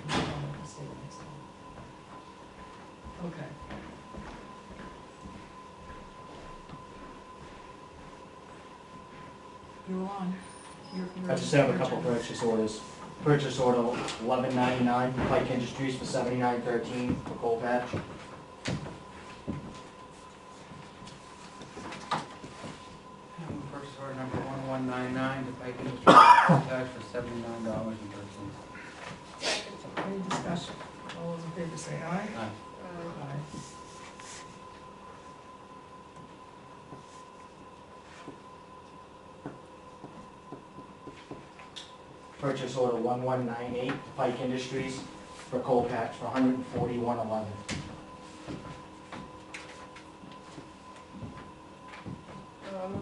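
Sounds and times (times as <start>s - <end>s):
high electrical hum: 0.0s - 53.0s
person coughing: 26.0s - 26.8s
footsteps: 45.2s - 53.0s.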